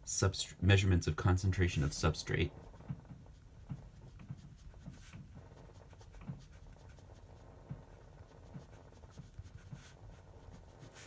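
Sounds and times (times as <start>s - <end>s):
pen writing on paper: 2.6s - 11.0s.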